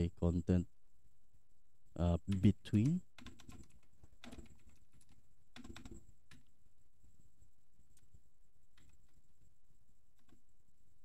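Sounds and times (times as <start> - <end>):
computer keyboard typing: 2.3 - 6.5, 8.7 - 9.2.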